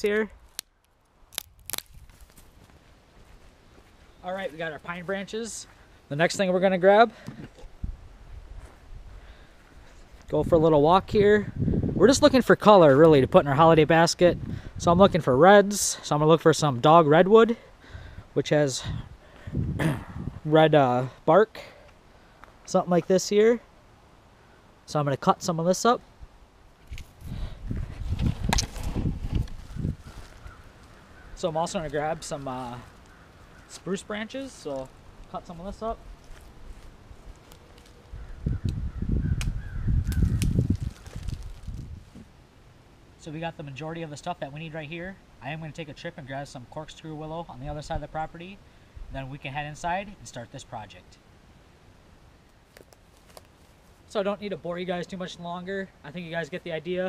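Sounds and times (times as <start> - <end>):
footsteps on grass and leaves: 0.4 - 6.6, 8.2 - 10.4, 26.8 - 38.3, 40.0 - 42.3, 52.5 - 54.1.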